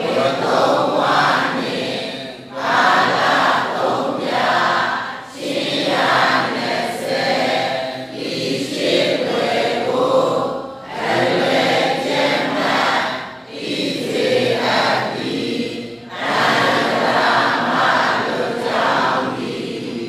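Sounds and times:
group chanting in unison: 0:00.0 - 0:20.0.

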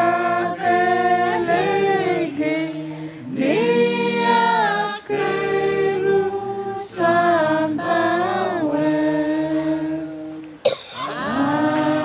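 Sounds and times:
voices singing unaccompanied: 0:00.0 - 0:12.0.

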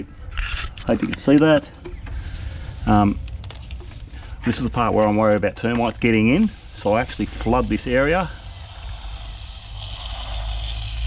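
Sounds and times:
low rumble: 0:01.8 - 0:11.0
sprayer wand hissing: 0:06.1 - 0:11.0.

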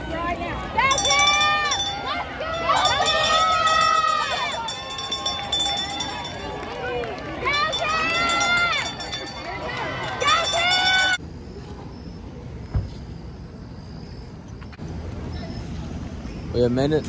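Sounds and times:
outdoor crowd noise: 0:00.0 - 0:17.0
spectators shouting cheers: 0:00.2 - 0:11.2.

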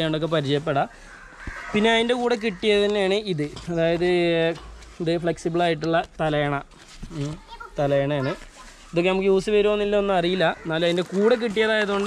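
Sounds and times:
man talking: 0:00.0 - 0:00.9, 0:01.7 - 0:12.0.

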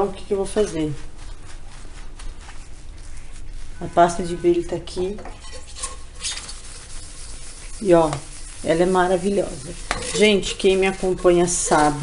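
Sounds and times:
metal pot clinking: 0:05.2 - 0:06.2, 0:09.8 - 0:10.6.

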